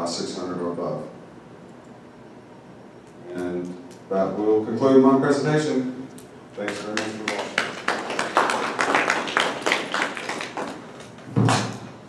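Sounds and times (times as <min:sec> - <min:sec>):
audience applauding: 0:06.6 - 0:11.6.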